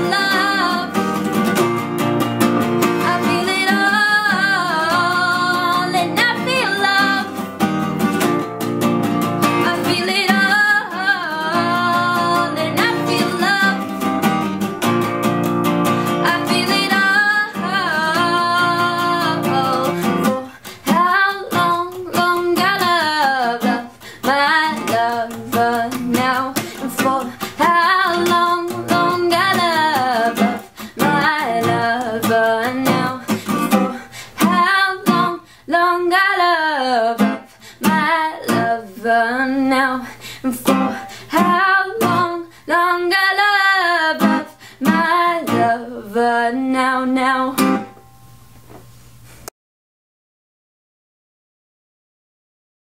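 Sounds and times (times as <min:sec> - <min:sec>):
woman singing a pop song: 0:00.0 - 0:01.6, 0:02.8 - 0:07.7, 0:09.4 - 0:14.2, 0:15.8 - 0:47.8
acoustic guitar strumming: 0:00.0 - 0:35.5, 0:36.2 - 0:46.0, 0:46.6 - 0:48.9.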